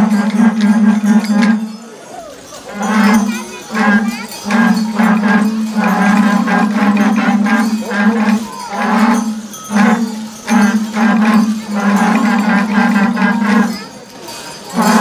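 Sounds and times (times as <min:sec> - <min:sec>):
cow horns blowing low notes: 0:00.0 - 0:15.0.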